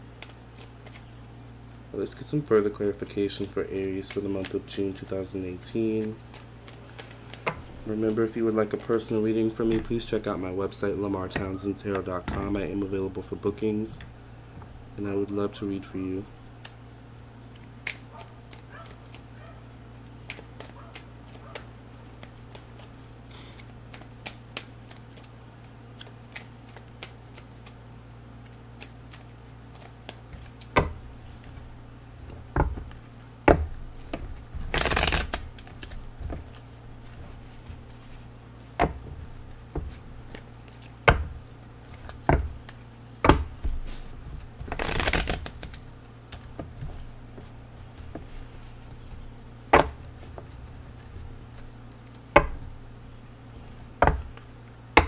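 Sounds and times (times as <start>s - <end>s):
cards shuffling: 0.0s - 13.4s, 15.6s - 31.6s, 32.2s - 52.4s
steady low hum: 0.0s - 55.0s
cards tapped into a pile: 32.6s - 37.2s, 44.6s - 48.4s.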